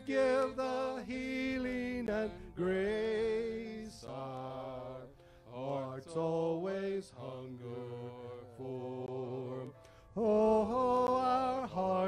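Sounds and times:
men singing a slow hymn: 0:00.0 - 0:12.0.

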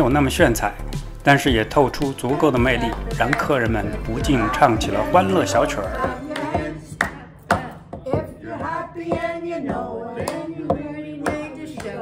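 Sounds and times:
people singing: 0:01.2 - 0:12.0
sharp hand claps: 0:06.0 - 0:07.7.

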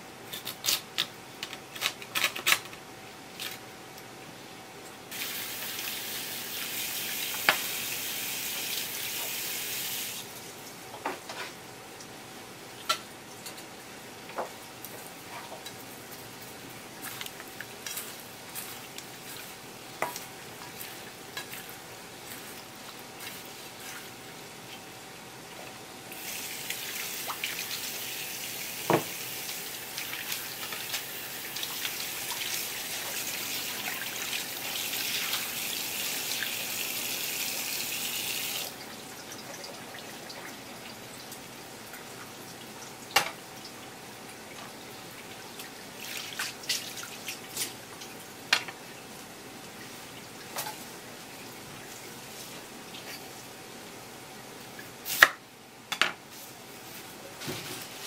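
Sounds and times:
kitchen tap running: 0:26.1 - 0:40.6
knocks on cutting board: 0:28.9 - 0:29.1.

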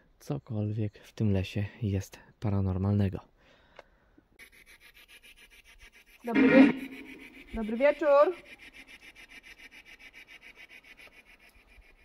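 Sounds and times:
radio static pulsing rapidly: 0:06.3 - 0:07.4.

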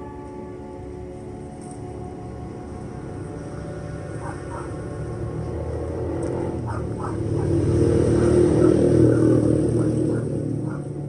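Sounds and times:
faint background music: 0:00.0 - 0:11.0
passing motor vehicle rumble: 0:00.0 - 0:11.0.

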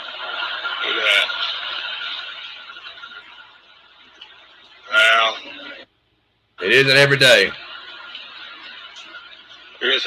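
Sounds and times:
faint steady whine: 0:00.0 - 0:10.0
recording hiss: 0:00.0 - 0:10.0.

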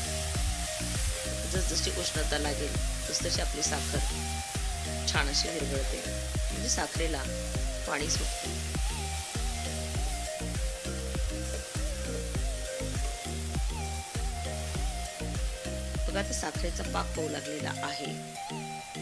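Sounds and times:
background music with steady beat: 0:00.0 - 0:19.0
coconut and sugar sizzling in pan: 0:00.0 - 0:19.0.

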